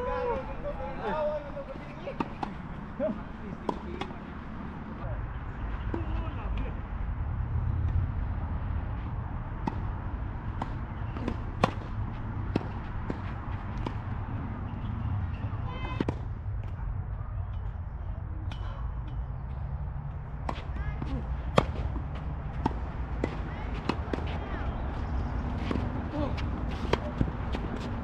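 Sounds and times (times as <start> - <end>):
tennis ball impact: 2.1 - 2.8, 3.5 - 4.2, 10.5 - 14.2, 20.4 - 28.0.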